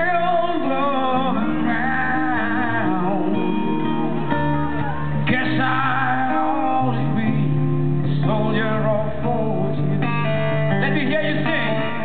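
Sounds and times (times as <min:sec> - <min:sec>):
band playing rock ballad: 0:00.0 - 0:12.0
held bass notes: 0:00.0 - 0:12.0
strummed guitar: 0:00.0 - 0:12.0.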